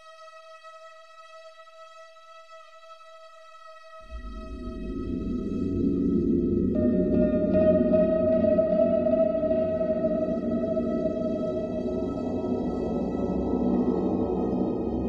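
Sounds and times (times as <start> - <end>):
deep low drone: 4.0 - 15.0.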